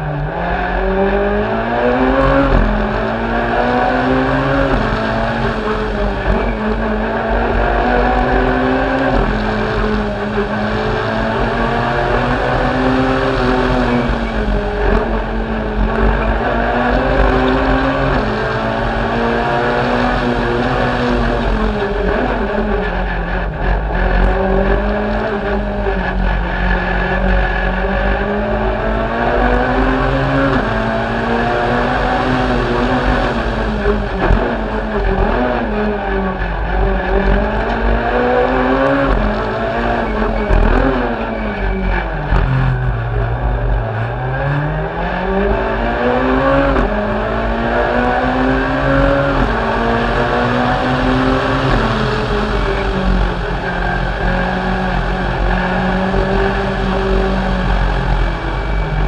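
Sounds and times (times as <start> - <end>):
rally car engine accelerating: 0.0 - 59.0.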